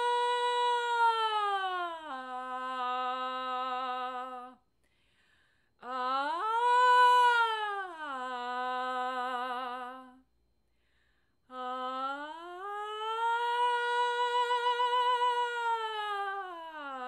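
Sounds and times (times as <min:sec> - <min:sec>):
woman singing unaccompanied: 0:00.0 - 0:04.6, 0:05.8 - 0:10.3, 0:11.5 - 0:17.0.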